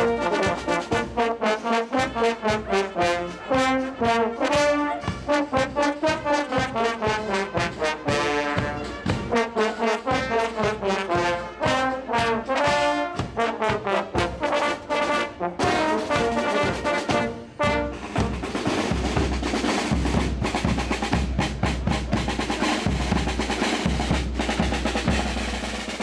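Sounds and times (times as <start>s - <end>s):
brass band playing lively tune: 0.0s - 26.0s
steady drum beats: 0.0s - 26.0s.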